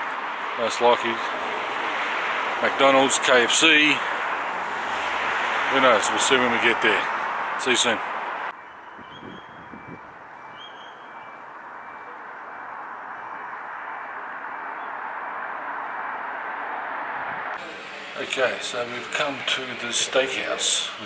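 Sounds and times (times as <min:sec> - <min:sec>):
road traffic rushing: 0:00.0 - 0:21.0.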